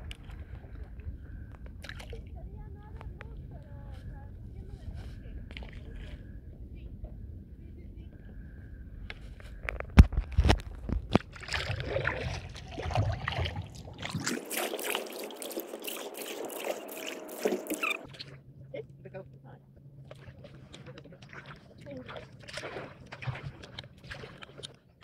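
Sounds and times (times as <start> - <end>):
paddle splashing and dripping: 11.0 - 18.4, 20.0 - 24.9.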